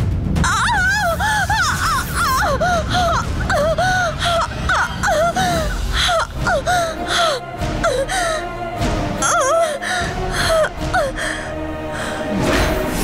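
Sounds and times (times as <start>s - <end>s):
background music with low drone: 0.0s - 13.0s
woman gasping cries: 0.4s - 8.6s, 9.2s - 12.2s.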